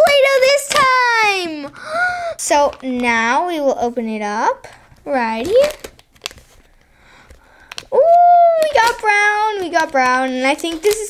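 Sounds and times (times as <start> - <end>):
plastic cup rustling: 2.4 - 11.0.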